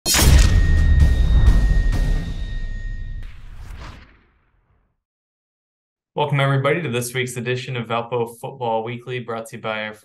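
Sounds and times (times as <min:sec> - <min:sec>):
loud hit: 0:00.0 - 0:04.9
whoosh: 0:00.1 - 0:05.0.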